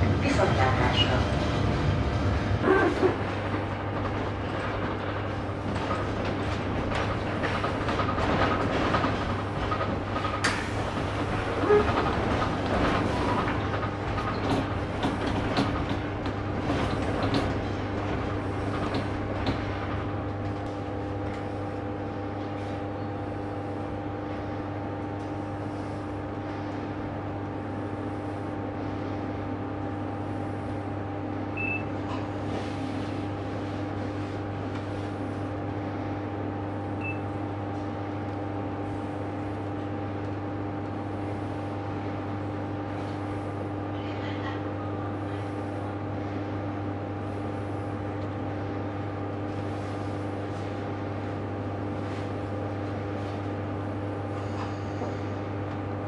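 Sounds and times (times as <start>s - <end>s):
train engine hum: 0.0s - 56.0s
train wheels clicking over rail joints: 3.2s - 20.6s.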